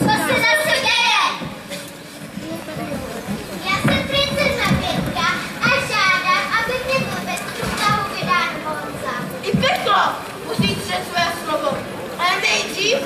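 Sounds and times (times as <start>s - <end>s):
children talking and calling out: 0.0s - 13.0s.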